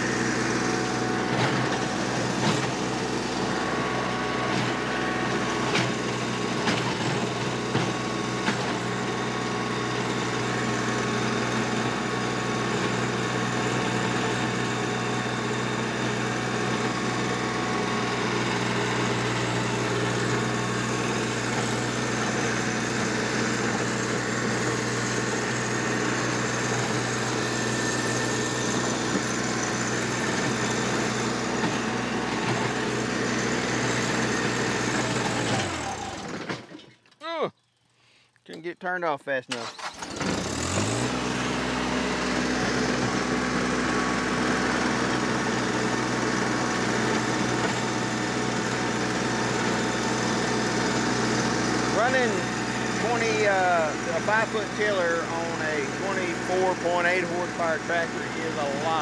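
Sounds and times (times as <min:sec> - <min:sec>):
tractor diesel engine under load: 0:00.0 - 0:37.4, 0:39.5 - 0:59.0.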